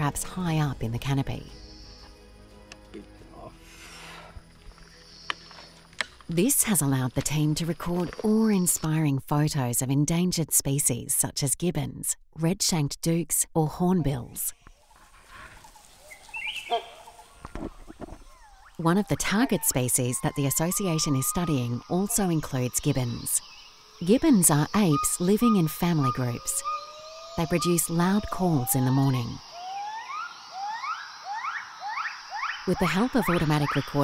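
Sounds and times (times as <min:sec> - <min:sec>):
wild birds calling: 0:00.0 - 0:02.4, 0:14.1 - 0:34.0.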